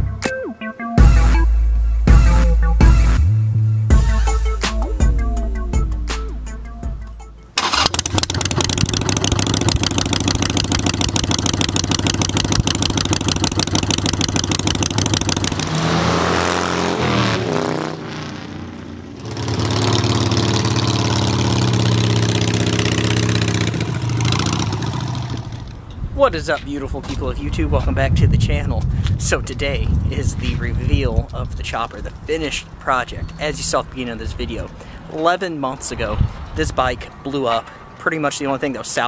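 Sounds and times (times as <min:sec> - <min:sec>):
motorcycle engine passing by: 0:07.7 - 0:25.8.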